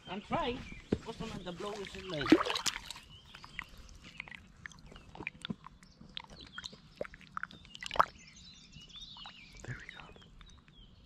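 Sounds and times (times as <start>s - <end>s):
water splashing and dripping: 1.6s - 8.2s.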